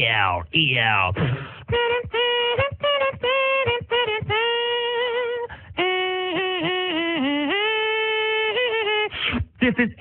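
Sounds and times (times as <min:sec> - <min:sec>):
man singing wordless melody: 0:00.0 - 0:08.8.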